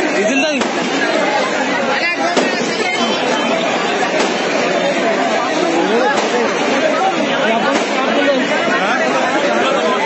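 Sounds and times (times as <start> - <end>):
crowd shouting and chattering: 0.0 - 10.0
sharp crack: 0.5 - 1.2, 4.1 - 4.6, 6.1 - 6.5.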